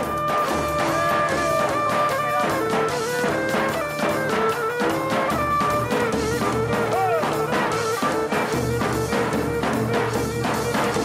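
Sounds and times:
keyboard accompaniment: 0:00.0 - 0:11.0.

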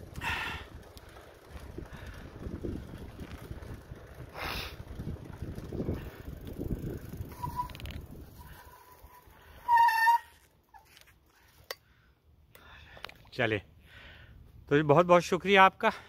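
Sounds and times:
wind rumbling on microphone: 0:00.0 - 0:09.3
bicycle brakes squealing: 0:05.9 - 0:11.1.

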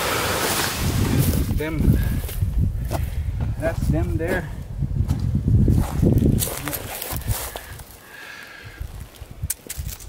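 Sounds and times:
footsteps on dry pine needles: 0:05.1 - 0:08.0.

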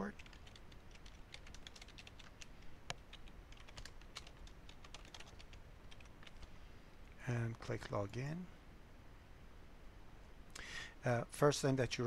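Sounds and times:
faint keyboard typing: 0:00.0 - 0:06.6.

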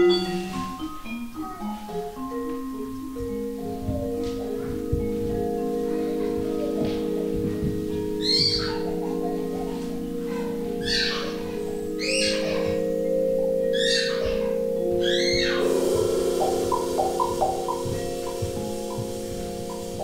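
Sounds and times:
quick mallet notes: 0:00.0 - 0:20.0
vibraphone chords: 0:00.0 - 0:20.0.

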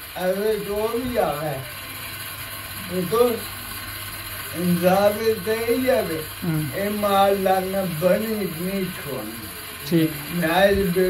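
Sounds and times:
mechanical rattling: 0:00.0 - 0:11.0
man speaking: 0:02.9 - 0:03.5, 0:04.6 - 0:11.0.

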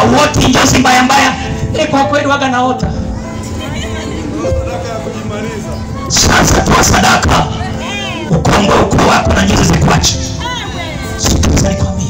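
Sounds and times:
man preaching over loudspeaker: 0:00.0 - 0:02.8, 0:04.4 - 0:10.3, 0:11.2 - 0:12.0.

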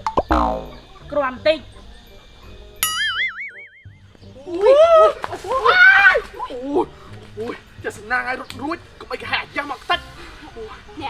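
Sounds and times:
cartoon boing sound effect: 0:00.0 - 0:00.8, 0:02.8 - 0:03.9.

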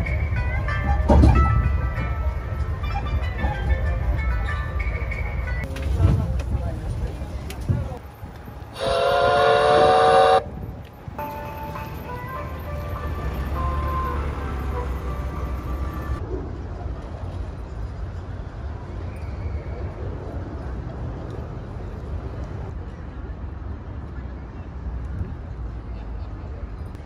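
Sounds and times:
vehicle low rumble: 0:00.0 - 0:27.0
people's voices: 0:01.6 - 0:10.4
road train horn chord: 0:08.8 - 0:10.5.

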